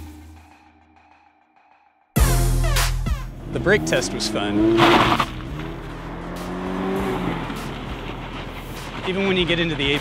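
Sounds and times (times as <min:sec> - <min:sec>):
car engine running: 0:02.4 - 0:10.0.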